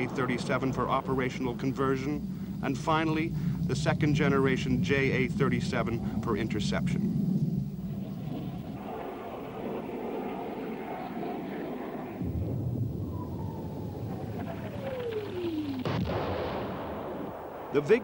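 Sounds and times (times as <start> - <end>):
jet aircraft noise: 0.0 - 18.0
explosion blast: 12.2 - 15.2, 15.8 - 18.0
falling whistle: 12.2 - 16.0.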